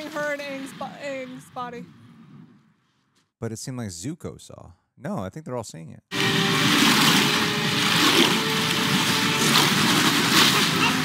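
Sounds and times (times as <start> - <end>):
dramatic music: 6.1 - 11.0
rushing water: 6.1 - 11.0.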